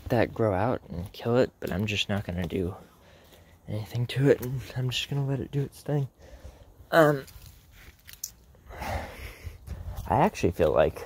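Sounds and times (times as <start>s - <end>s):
man's breathy voice: 8.6s - 10.2s.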